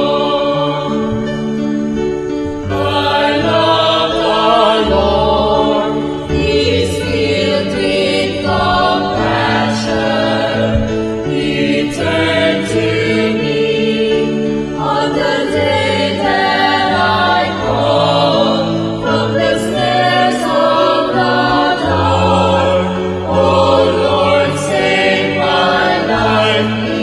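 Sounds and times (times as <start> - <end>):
choir singing a slow hymn: 0.0 - 27.0.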